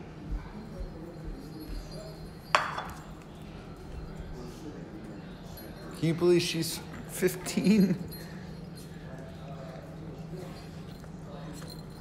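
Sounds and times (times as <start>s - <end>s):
fork clinking on plate: 2.5s - 3.2s.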